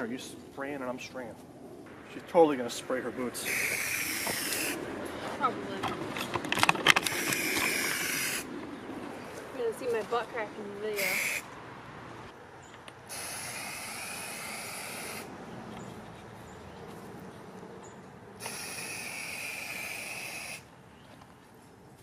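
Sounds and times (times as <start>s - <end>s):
aerosol paint spraying: 3.4s - 4.8s, 11.0s - 11.4s, 13.1s - 15.3s, 18.4s - 20.6s.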